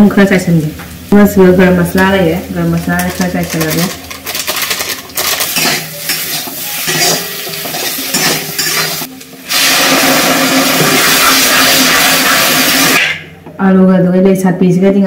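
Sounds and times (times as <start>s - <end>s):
food sizzling in hot oil: 0.0s - 13.2s.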